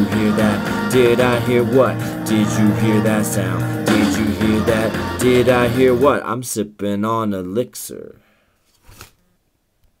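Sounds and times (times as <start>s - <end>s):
rap track with beat: 0.0s - 6.2s.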